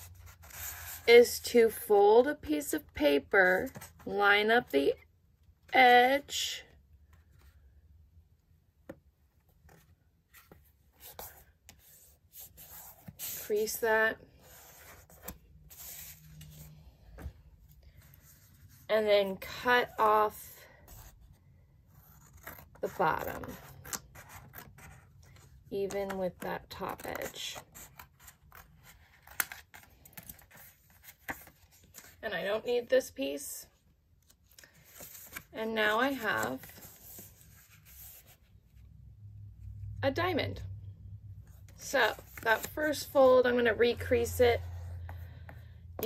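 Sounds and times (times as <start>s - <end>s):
paper rustling and sliding: 9.6s - 18.9s, 26.8s - 32.2s, 34.2s - 38.5s
paper rustling on cardboard: 14.4s - 17.3s, 34.2s - 38.5s.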